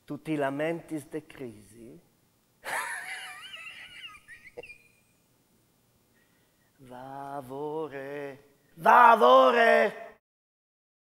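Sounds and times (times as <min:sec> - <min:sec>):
man laughing wheezily: 0:02.6 - 0:05.0.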